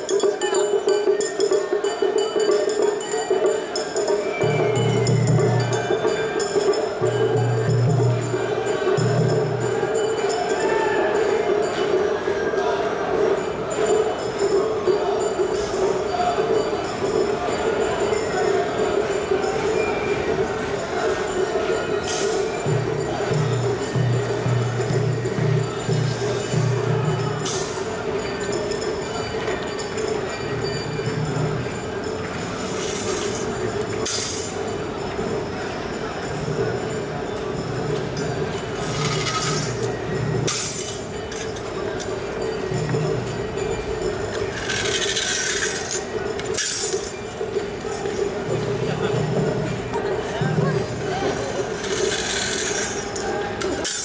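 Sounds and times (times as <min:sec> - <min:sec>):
metal rings jangling on staff: 0:27.4 - 0:30.2, 0:32.4 - 0:34.7, 0:38.8 - 0:43.1, 0:43.8 - 0:48.2, 0:51.6 - 0:54.0.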